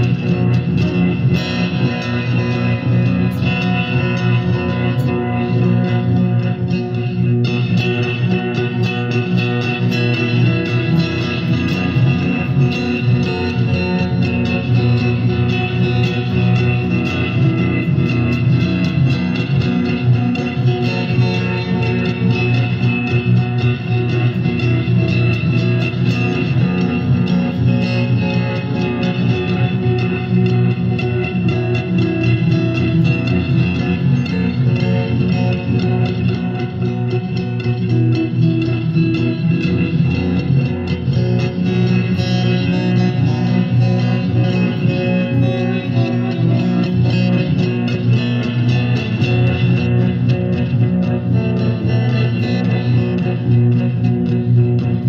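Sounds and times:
guitar picked and strummed: 0.0s - 55.0s.

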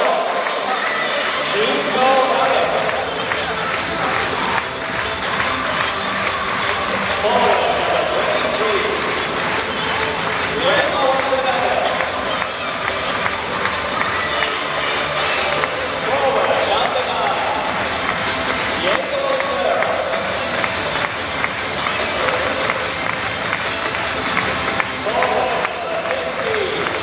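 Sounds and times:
crowd cheering: 0.0s - 27.0s
music over loudspeakers: 0.0s - 27.0s.

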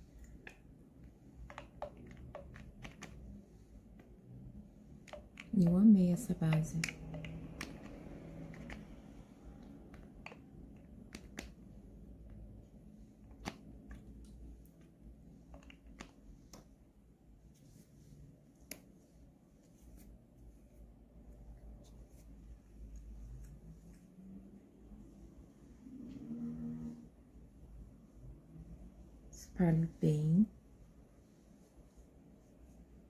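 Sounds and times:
low room hum: 0.0s - 33.0s.

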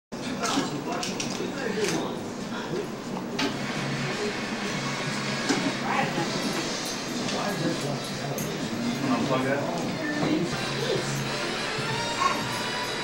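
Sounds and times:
indistinct voices talking: 5.7s - 13.0s.

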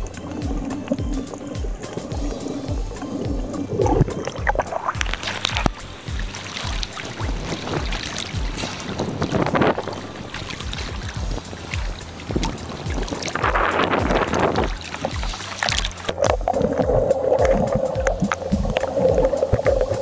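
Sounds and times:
low thumps: 0.0s - 20.0s
seawater sloshing and splashing: 0.0s - 20.0s
steady underwater hum: 0.0s - 20.0s.

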